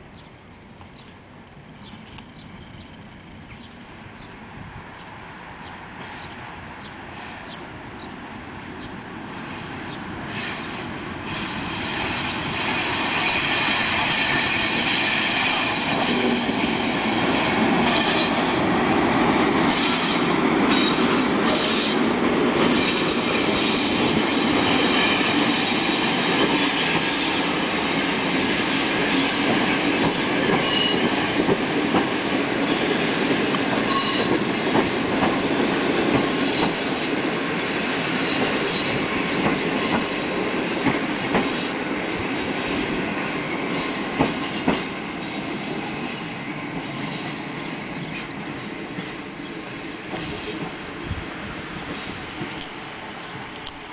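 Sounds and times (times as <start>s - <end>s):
passenger train rolling past: 0.0s - 53.9s
train wheels clicking over rail joints: 28.3s - 32.7s, 33.4s - 45.6s.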